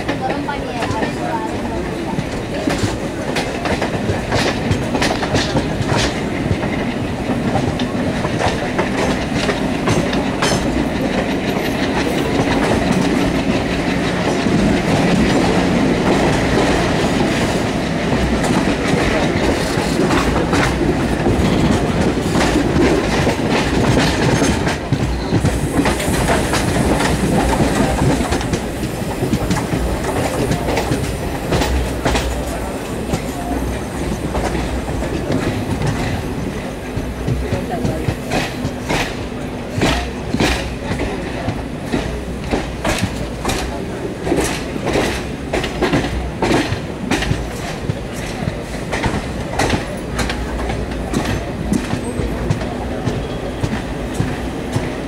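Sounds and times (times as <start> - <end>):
train rumble and rushing air: 0.0 - 55.0
wheels clicking over rail joints: 0.0 - 55.0.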